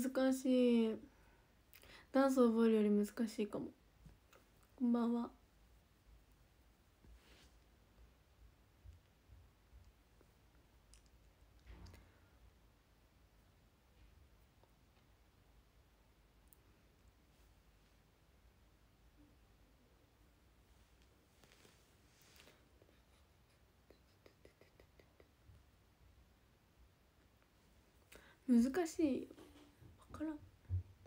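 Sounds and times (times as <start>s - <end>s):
faint clicks: 9.8s - 12.1s.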